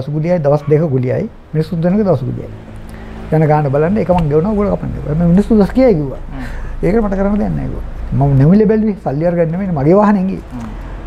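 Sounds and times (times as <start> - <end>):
man talking: 0.0 - 2.6, 3.3 - 10.8.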